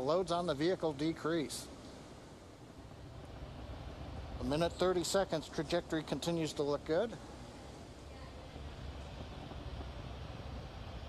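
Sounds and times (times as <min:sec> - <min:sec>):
faint rushing noise: 0:00.0 - 0:11.0.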